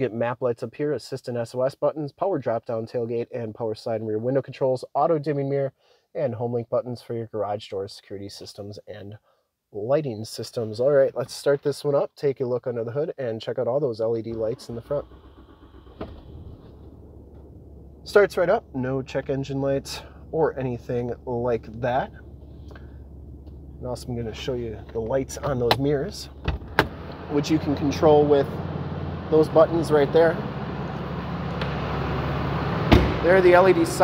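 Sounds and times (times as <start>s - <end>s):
diesel engine starting and idling: 14.3s - 34.0s
sharp thump: 25.4s - 27.2s, 32.8s - 33.3s.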